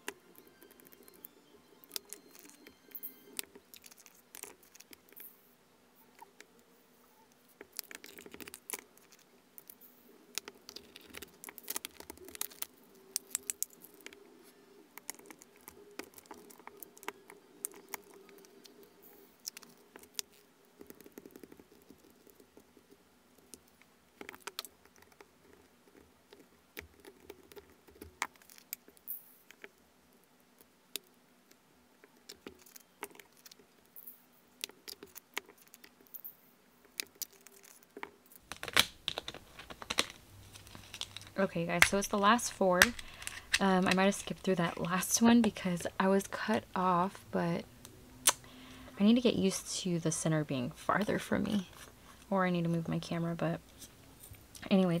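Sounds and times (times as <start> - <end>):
tiny beads pattering into plastic: 0.0 - 5.3, 7.5 - 14.2, 15.0 - 29.8, 36.9 - 47.2
plastic containers and lids clicking: 38.5 - 45.6.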